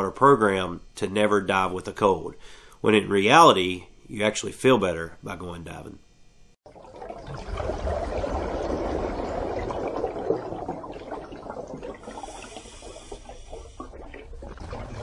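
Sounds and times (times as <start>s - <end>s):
water washing: 6.7s - 15.0s.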